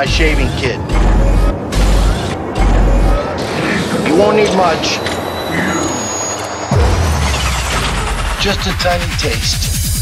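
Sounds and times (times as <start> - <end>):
heavy bass: 0.0 - 4.8
high steady tone: 0.0 - 7.4
electronic bass music: 0.0 - 10.0.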